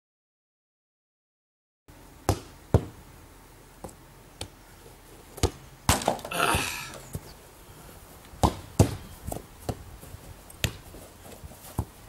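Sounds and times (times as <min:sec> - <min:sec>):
football being kicked: 0:02.3 - 0:03.0, 0:08.4 - 0:09.8, 0:10.6 - 0:11.0.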